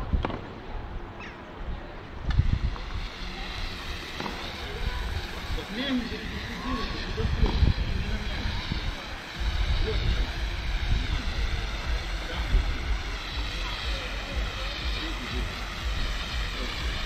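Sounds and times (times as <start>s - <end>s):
faint distant voices: 0.0s - 17.0s
wind buffeting microphone: 0.0s - 17.0s.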